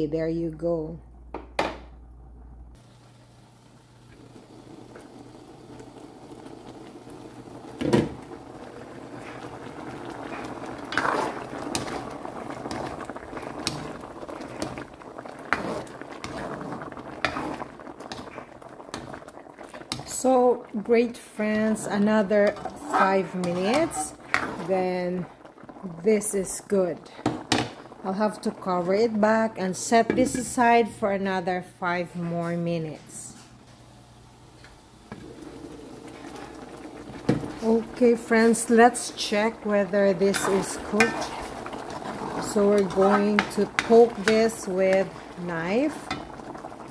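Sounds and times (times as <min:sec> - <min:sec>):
liquid bubbling in a pan: 0:02.7 - 0:29.6, 0:33.7 - 0:46.9
coconut milk boiling: 0:02.7 - 0:30.0, 0:33.9 - 0:46.9.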